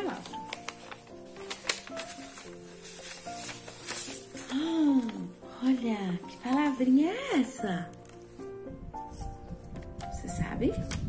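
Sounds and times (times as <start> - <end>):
paper rustling: 0.0 - 8.4, 9.0 - 11.0
soft background music: 0.0 - 11.0.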